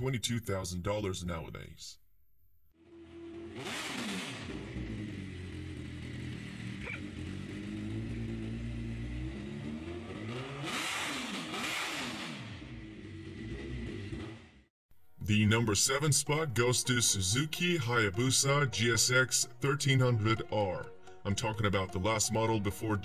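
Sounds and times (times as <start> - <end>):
motorcycle engine revving: 2.8 - 14.7.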